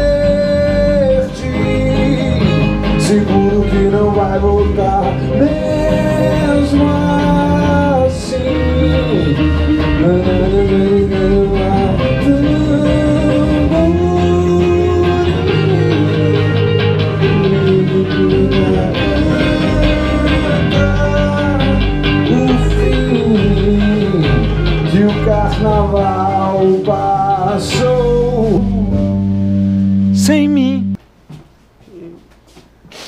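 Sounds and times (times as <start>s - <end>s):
band holding a chord: 0.0s - 31.0s
electric guitars: 0.0s - 31.0s
man singing with vibrato: 0.0s - 31.0s.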